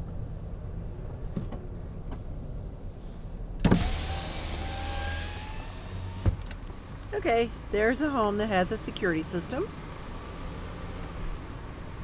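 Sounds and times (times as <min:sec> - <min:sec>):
car engine hum: 0:00.0 - 0:12.0
power window motor whine: 0:03.6 - 0:06.5.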